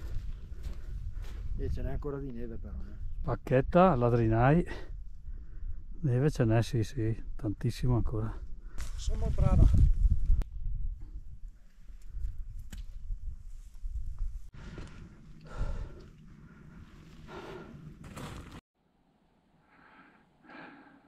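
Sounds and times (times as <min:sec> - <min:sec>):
wind rumble on microphone: 0:00.0 - 0:06.0, 0:08.4 - 0:14.6
heavy breathy panting: 0:14.6 - 0:18.1, 0:19.7 - 0:21.0.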